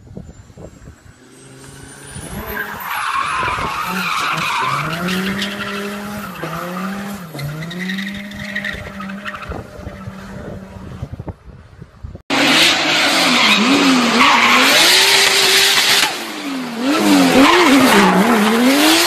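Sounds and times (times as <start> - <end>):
tyres screeching: 0.7 - 10.6, 12.3 - 19.0
car engine revving hard: 1.5 - 10.9, 12.3 - 19.0.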